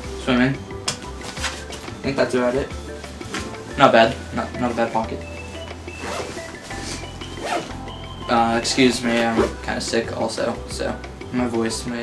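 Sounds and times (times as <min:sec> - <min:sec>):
backpack zipper pulled open: 0:06.0 - 0:07.8, 0:09.1 - 0:09.6.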